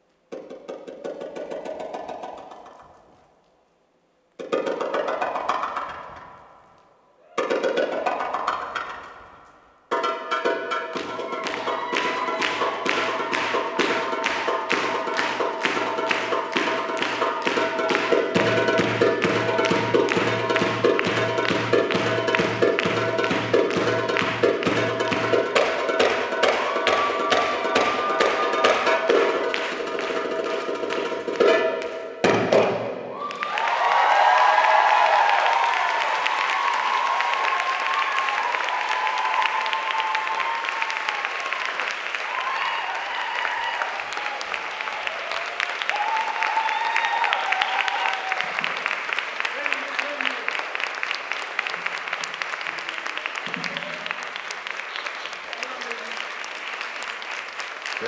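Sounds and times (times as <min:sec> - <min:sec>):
audience applause and cheering: 0:09.9 - 0:32.0, 0:32.6 - 0:58.0
drum solo music: 0:09.9 - 0:33.0.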